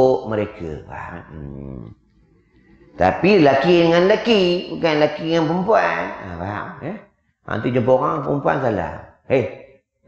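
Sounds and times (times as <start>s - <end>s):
man's low drawn-out vocal sound: 0.0s - 1.9s.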